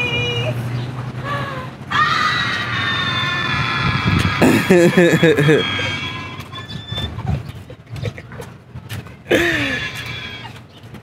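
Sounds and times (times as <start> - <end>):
woman squealing: 1.9 - 7.3, 9.4 - 10.5.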